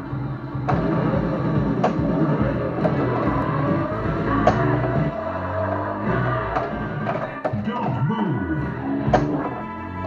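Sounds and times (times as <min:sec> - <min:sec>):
pinball machine game music: 0:00.0 - 0:10.0.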